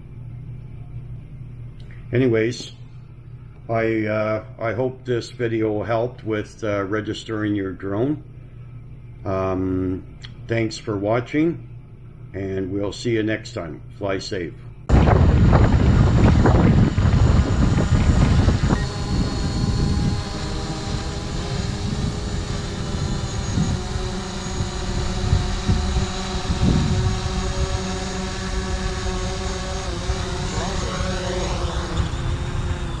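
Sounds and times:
loud low rumble: 14.8s - 28.0s
drone propellers whining: 14.9s - 33.0s.

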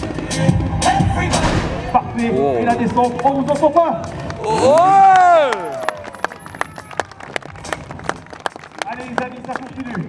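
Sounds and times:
crowd clapping: 2.7s - 10.0s
person shouting over pa: 4.4s - 5.8s.

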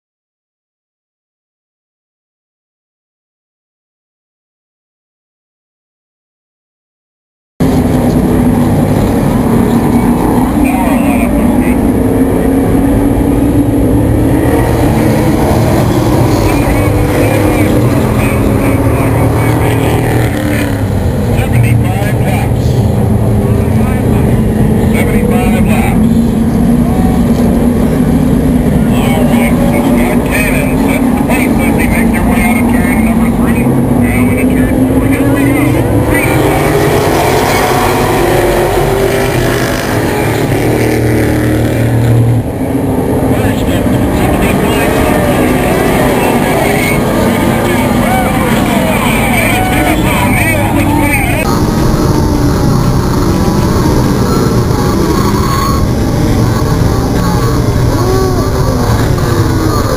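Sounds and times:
racing car engines droning: 7.6s - 59.9s.

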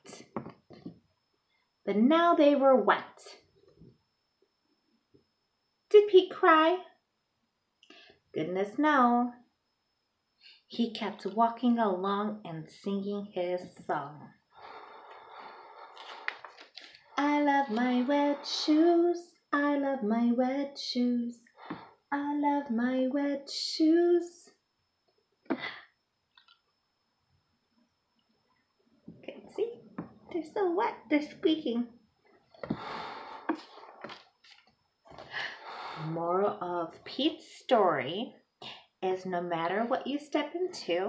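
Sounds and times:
paper rustling: 15.9s - 17.1s.

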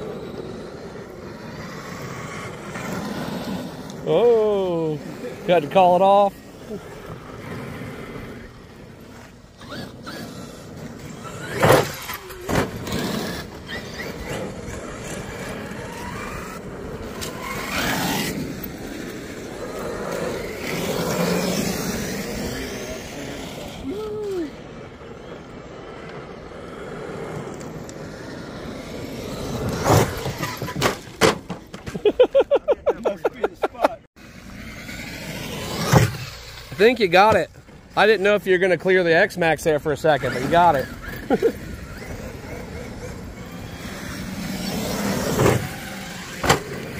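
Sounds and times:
rc trucks driving on gravel: 0.0s - 46.9s.

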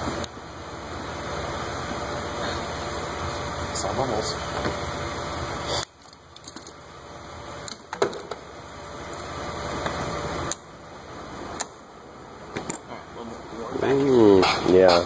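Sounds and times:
steady mechanical noise: 0.0s - 15.0s.

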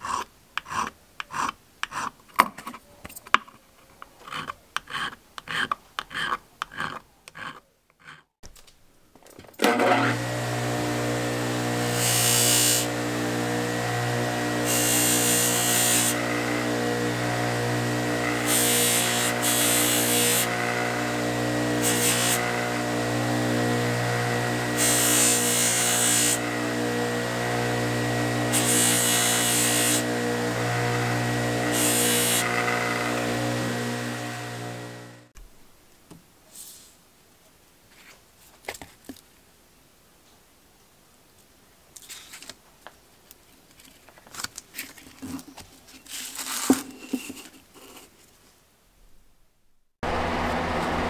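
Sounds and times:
bench grinder motor humming: 9.6s - 35.3s, 50.0s - 51.0s
blade on spinning wire wheel: 9.7s - 35.3s.

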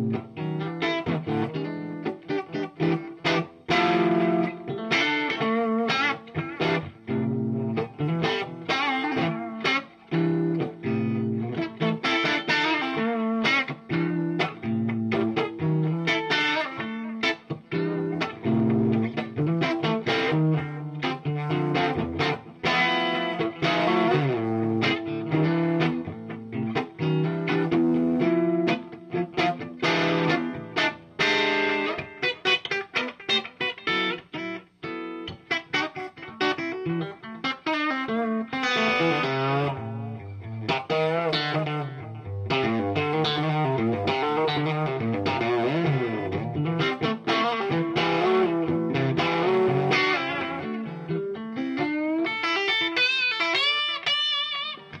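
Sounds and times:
electric guitar with delay: 0.0s - 55.0s.

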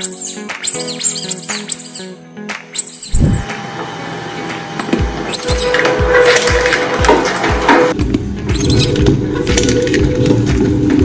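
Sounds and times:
background music with deep beat: 4.4s - 11.0s.

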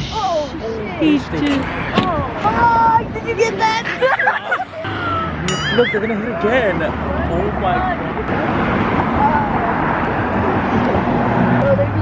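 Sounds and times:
parking lot traffic noise: 0.0s - 12.0s.

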